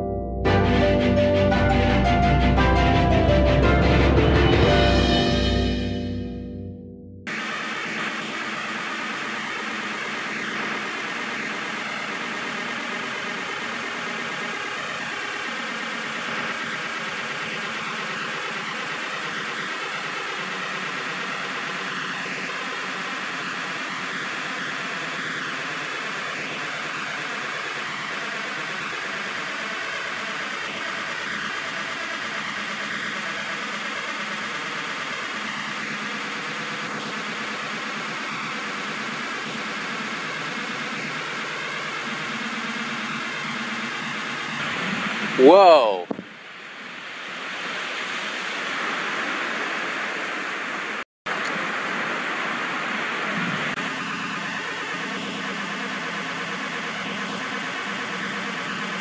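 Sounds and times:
background music: 0:00.0 - 0:07.2.

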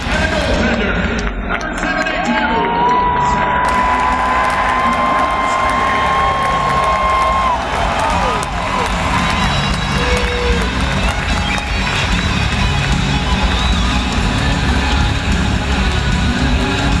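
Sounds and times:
loud music over sound system: 0:00.0 - 0:17.0
crowd cheering: 0:02.3 - 0:17.0.

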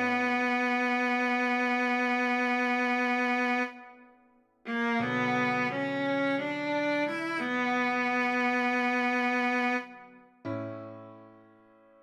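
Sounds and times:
viola melody: 0:00.0 - 0:03.9, 0:04.7 - 0:10.7.

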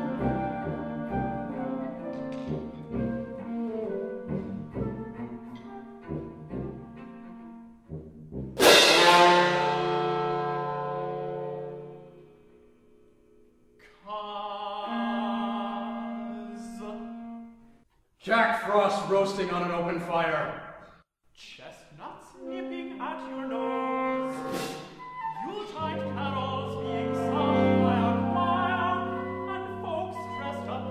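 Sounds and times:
chamber ensemble playing chords: 0:00.0 - 0:13.6, 0:25.7 - 0:30.9
chamber ensemble loud chord: 0:08.6 - 0:13.6.

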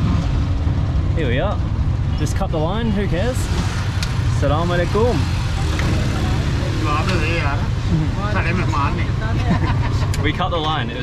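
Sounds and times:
auto-rickshaw engine idling: 0:00.0 - 0:11.0
voices talking: 0:04.4 - 0:11.0.

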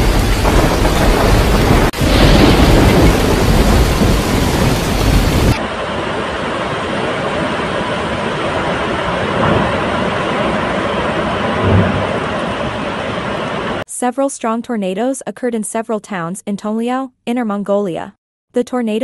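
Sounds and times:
wind buffeting microphone: 0:00.0 - 0:13.2.

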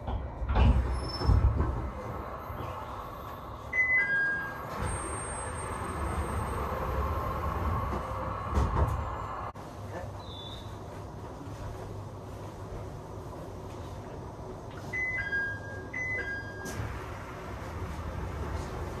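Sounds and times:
train humming: 0:00.0 - 0:10.0, 0:16.6 - 0:19.0.

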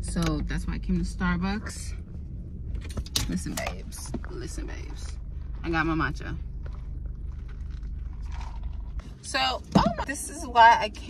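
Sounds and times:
car running low hum: 0:00.0 - 0:11.0.

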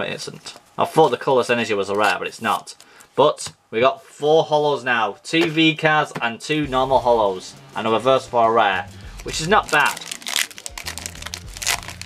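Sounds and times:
foil wrapper crinkling: 0:09.0 - 0:12.0.

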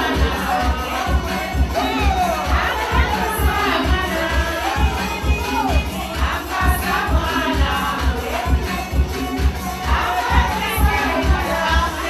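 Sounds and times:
crowd shouting and cheering: 0:00.0 - 0:12.0.

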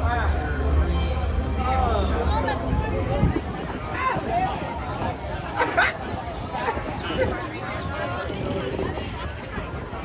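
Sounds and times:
outdoor crowd din: 0:00.0 - 0:10.0
people talking: 0:00.0 - 0:10.0.

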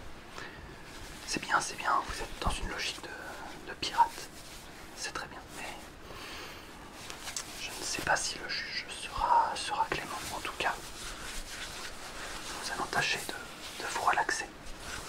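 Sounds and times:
fabric gloves swishing and rustling: 0:00.0 - 0:06.0, 0:06.6 - 0:15.0.

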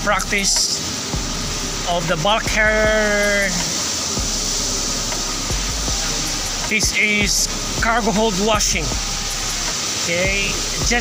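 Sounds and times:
water jet spraying on metal: 0:00.0 - 0:11.0.

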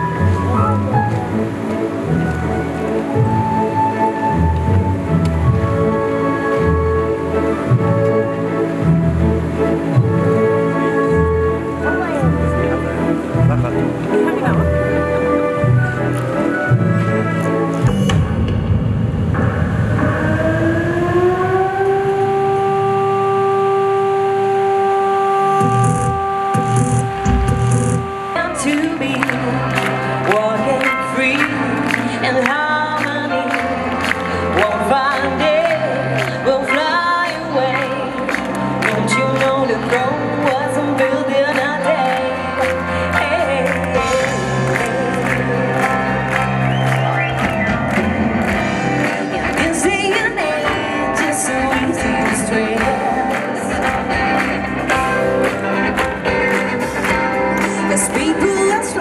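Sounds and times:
orchestra and choir music: 0:00.0 - 0:54.5
low rumble: 0:17.9 - 0:24.0
long held musical note: 0:18.0 - 0:29.0
low thumps: 0:25.6 - 0:28.6.

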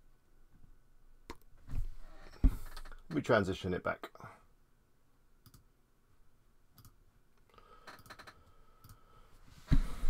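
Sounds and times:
computer mouse clicks: 0:05.4 - 0:05.7, 0:06.8 - 0:07.0, 0:07.9 - 0:09.0.

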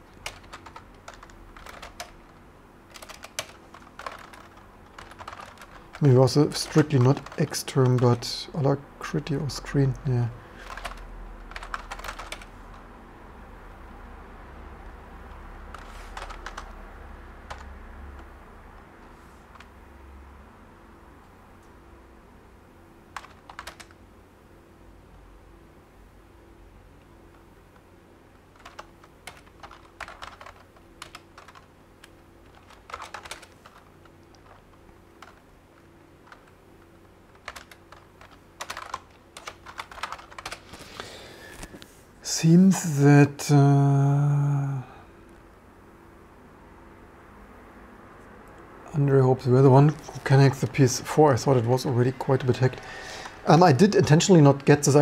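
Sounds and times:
typing on computer keyboard: 0:00.0 - 0:08.3, 0:10.6 - 0:12.9, 0:15.3 - 0:16.8, 0:17.4 - 0:18.3, 0:23.2 - 0:24.0, 0:28.5 - 0:35.4, 0:36.2 - 0:36.6, 0:37.3 - 0:40.8
faint low hum: 0:00.0 - 0:55.0.

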